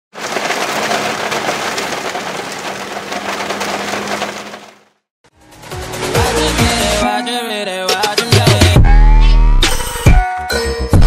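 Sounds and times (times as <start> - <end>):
heavy rain on windscreen: 0.1 - 5.0.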